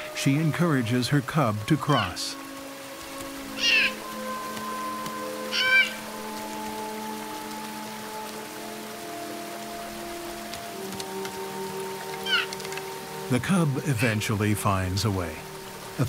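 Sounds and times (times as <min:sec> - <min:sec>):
music of long held notes: 0:00.0 - 0:16.0
bear cub crying: 0:01.9 - 0:02.2, 0:03.6 - 0:04.0, 0:05.5 - 0:06.1, 0:12.2 - 0:12.5.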